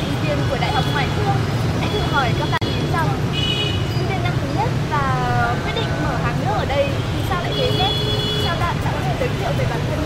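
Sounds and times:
street traffic rumble: 0.0s - 10.0s
young woman talking: 4.0s - 10.0s.

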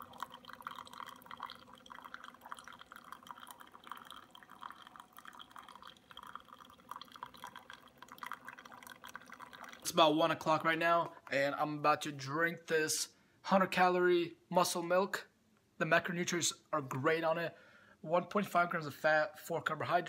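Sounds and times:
coffee maker humming: 0.0s - 10.2s
coffee trickling into cup: 0.0s - 10.6s.

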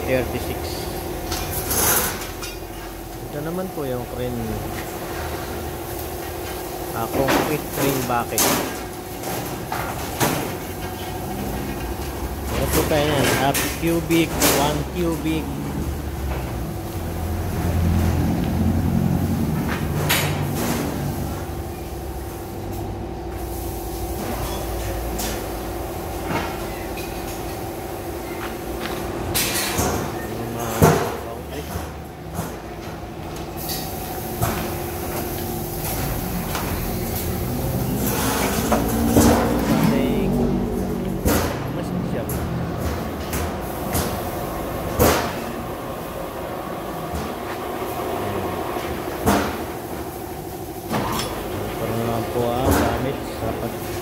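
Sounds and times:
machinery humming: 0.0s - 54.0s.

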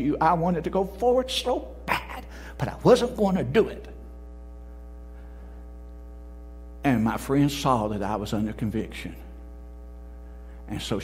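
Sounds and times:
man's voice: 0.0s - 4.0s, 6.8s - 9.2s
electrical mains hum: 0.0s - 11.0s.

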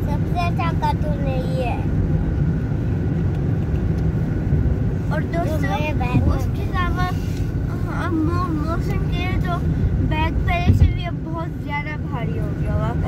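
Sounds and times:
child talking: 0.0s - 1.9s, 5.1s - 12.7s
car driving rumble: 0.0s - 13.0s.

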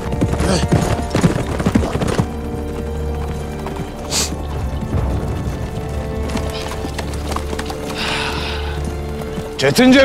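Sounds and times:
background music with held tone: 0.0s - 10.0s
horse hooves clopping on dirt: 0.0s - 10.0s.

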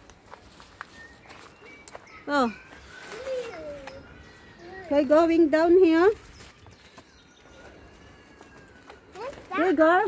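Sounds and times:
footsteps on dirt path: 0.0s - 10.0s.

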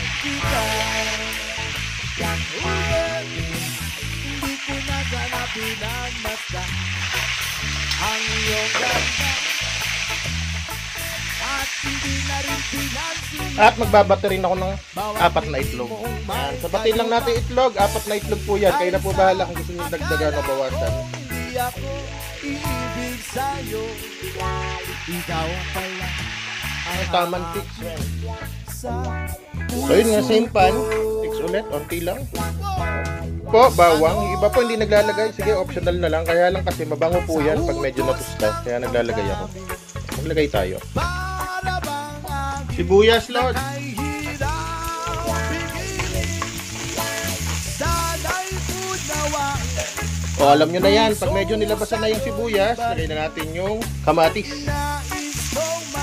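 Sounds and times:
background music with singing: 0.0s - 56.0s
oil sizzling in a frying pan: 0.0s - 56.0s.

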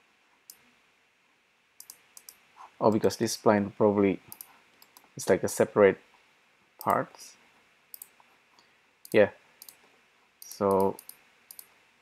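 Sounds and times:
computer mouse clicks: 1.8s - 2.4s, 4.3s - 5.2s, 7.9s - 8.3s, 9.0s - 9.8s, 10.4s - 11.7s.

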